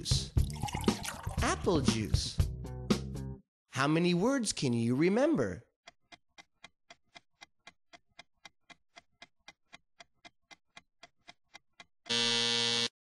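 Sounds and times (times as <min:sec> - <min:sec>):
stopwatch ticking: 0:05.8 - 0:11.9
loud timer buzzer: 0:12.1 - 0:13.0.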